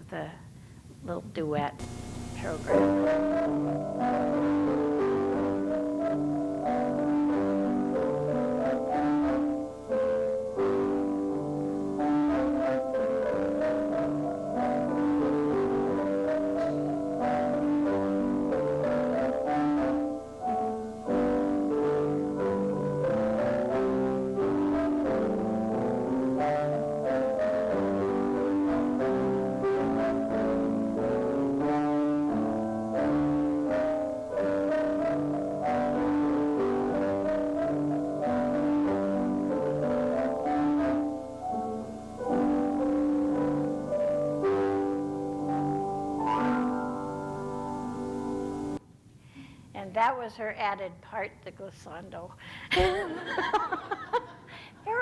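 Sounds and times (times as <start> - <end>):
piano duet: 1.8 - 48.8.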